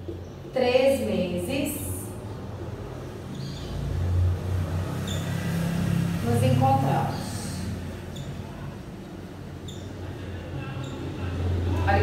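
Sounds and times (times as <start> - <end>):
marker squeaking on a whiteboard: 4.9 - 5.5, 7.1 - 11.4.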